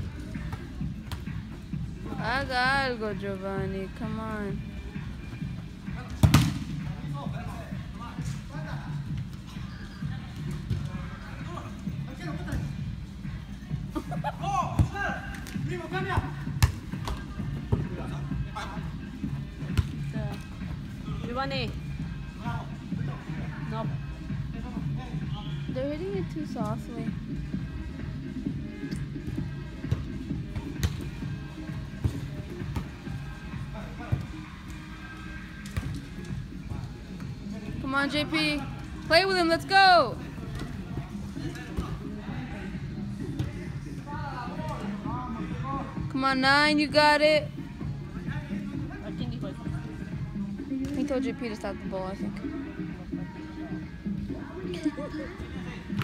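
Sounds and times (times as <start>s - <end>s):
background music: 0.0s - 56.0s
soccer ball kicked: 0.4s - 1.5s, 6.0s - 6.9s, 14.7s - 18.0s, 19.7s - 20.4s, 29.2s - 33.2s.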